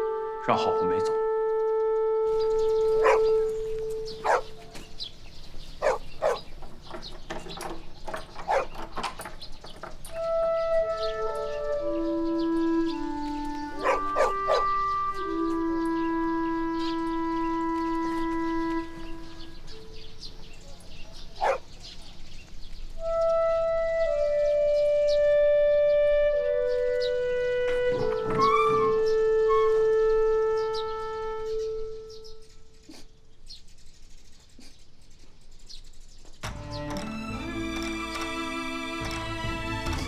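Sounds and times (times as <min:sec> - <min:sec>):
slow solo wind instrument melody: 0:00.0 - 0:04.8, 0:10.1 - 0:20.2, 0:23.0 - 0:32.6, 0:36.4 - 0:40.0
sharp clicks and knocks: 0:06.6 - 0:10.2.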